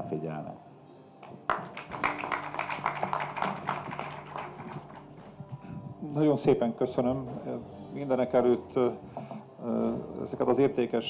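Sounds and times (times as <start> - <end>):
audience applauding: 1.2 - 5.3.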